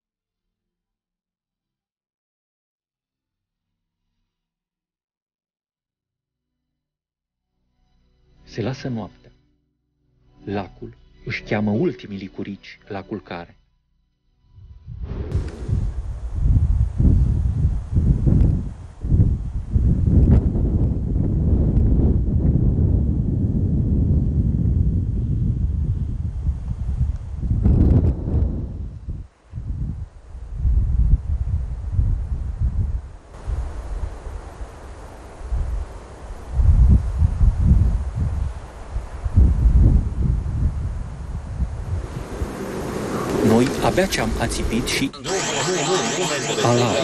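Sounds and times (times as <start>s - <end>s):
wind buffeting microphone: 14.6s - 44.9s.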